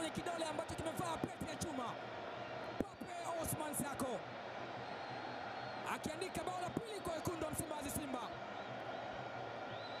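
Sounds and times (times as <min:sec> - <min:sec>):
commentator talking: 0:00.0 - 0:02.0, 0:02.8 - 0:04.2, 0:05.9 - 0:08.3.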